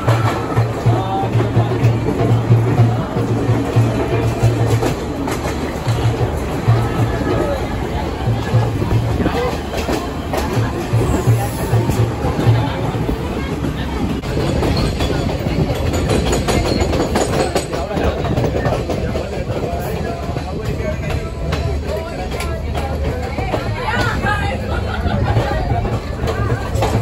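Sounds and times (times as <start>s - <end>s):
train wheels rumbling on rails: 0.0s - 27.0s.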